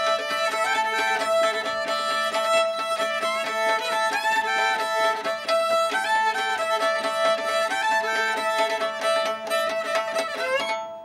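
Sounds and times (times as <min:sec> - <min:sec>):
fiddle playing old-time tune: 0:00.0 - 0:11.0.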